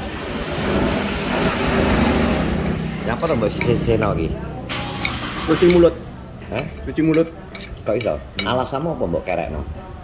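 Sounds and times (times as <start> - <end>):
road vehicle passing by: 0.0 - 6.5.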